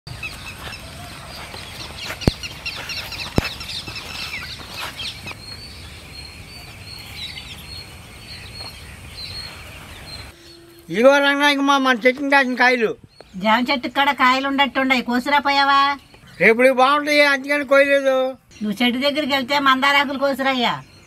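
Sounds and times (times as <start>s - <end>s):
birds chirping and calling: 0.1s - 21.0s.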